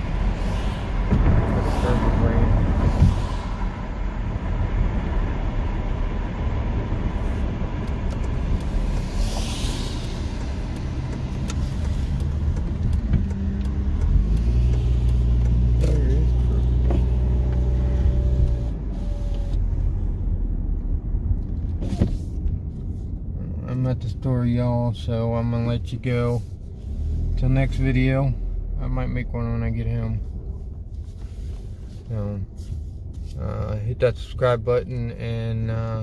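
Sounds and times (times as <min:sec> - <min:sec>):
car engine hum: 0:00.0 - 0:36.0
road noise: 0:00.0 - 0:36.0.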